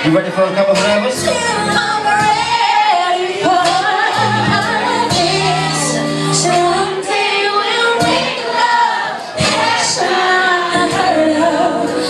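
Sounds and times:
band keyboard and bass: 0:00.0 - 0:12.0
woman singing into a microphone: 0:01.2 - 0:12.0.

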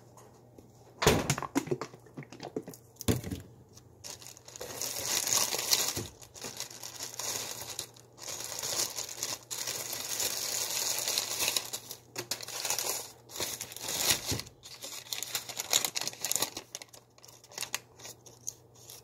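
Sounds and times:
plastic bread bag crinkling: 0:01.3 - 0:19.0.

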